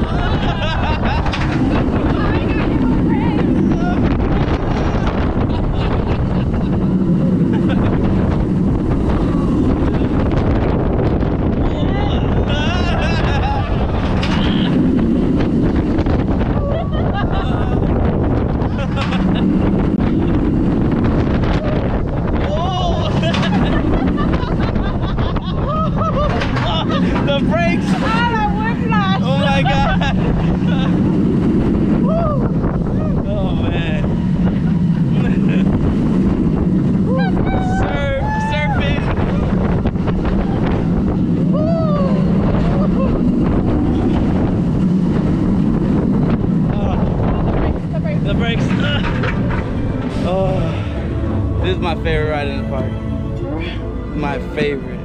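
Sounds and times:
roller coaster rumbling on track: 0.0 - 55.0
wind rushing over microphone: 0.0 - 55.0
riders yelling and laughing: 16.5 - 19.6, 21.5 - 31.3, 37.0 - 44.4.

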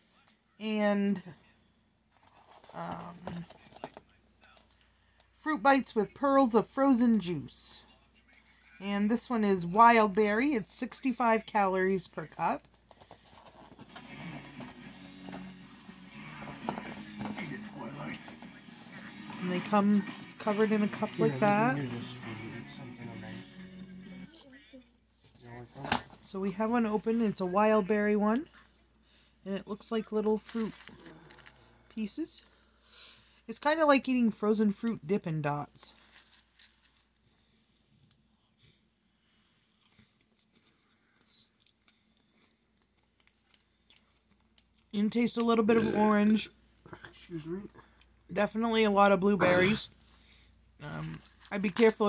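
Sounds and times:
faint background music: 0.0 - 36.9, 44.9 - 52.0
faint chewing: 36.1 - 45.0.

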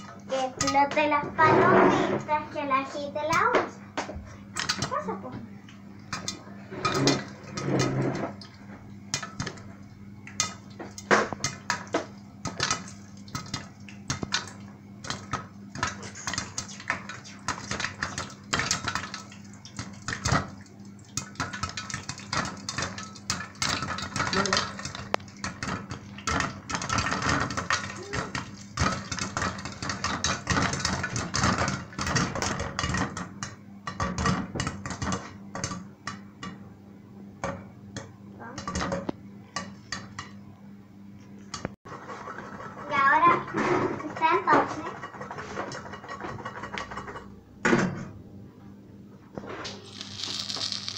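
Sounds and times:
popcorn popping in hot oil: 0.0 - 1.2, 3.0 - 36.7, 37.4 - 40.4, 49.7 - 50.9.

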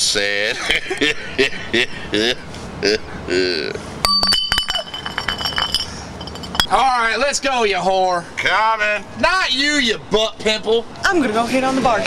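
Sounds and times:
man laughing: 0.3 - 3.7
glass bottles clinking: 4.0 - 6.9.

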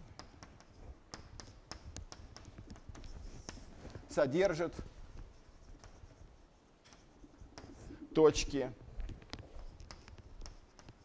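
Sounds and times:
chalk scratching on blackboard: 0.0 - 8.7, 9.4 - 11.0.

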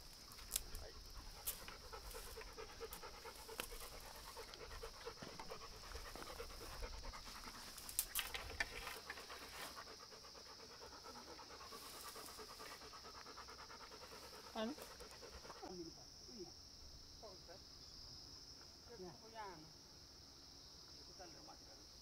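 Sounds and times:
dog panting: 0.2 - 15.8.

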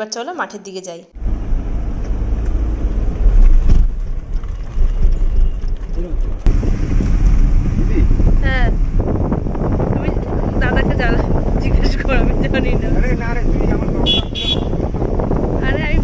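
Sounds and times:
wind buffeting microphone: 2.8 - 16.0.

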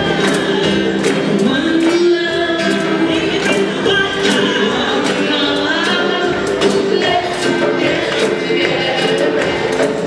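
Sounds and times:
acoustic guitars: 0.0 - 10.0
woman singing lead: 0.0 - 10.0.

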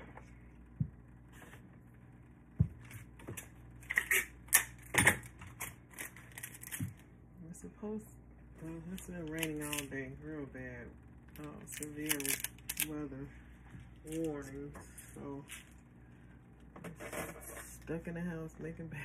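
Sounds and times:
crackly tearing: 5.6 - 6.8, 11.7 - 12.9
woman speaking: 7.4 - 13.4, 14.0 - 15.6, 17.4 - 19.0.

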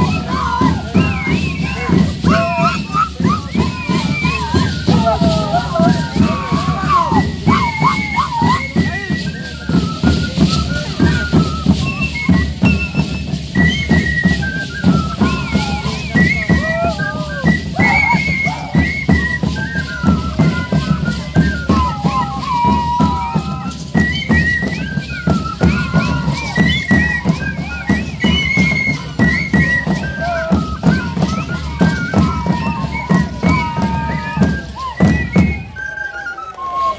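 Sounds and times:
hand drums beating: 0.0 - 35.6
high flute melody: 0.0 - 36.9.

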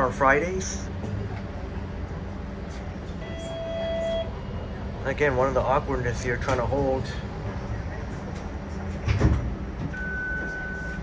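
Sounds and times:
streetcar interior rumble: 0.0 - 11.0.

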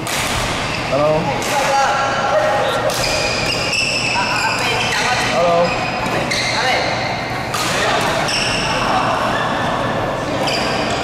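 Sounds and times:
players' voices: 0.8 - 11.0
court shoes squeaking: 2.3 - 9.0, 10.3 - 11.0.

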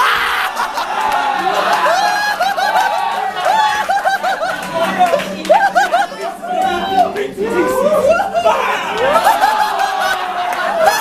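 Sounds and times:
people talking and laughing: 0.0 - 11.0.

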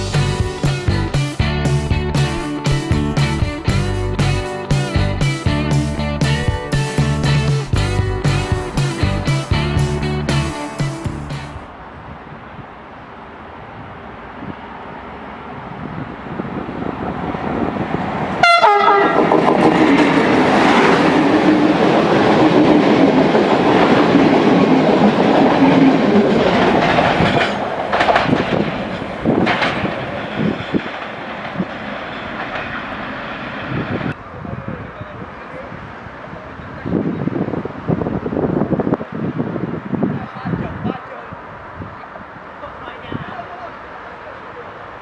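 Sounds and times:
diesel train passing: 0.0 - 45.0
train horn blast: 18.4 - 19.8
wheels clattering over rail joints: 19.0 - 34.2.

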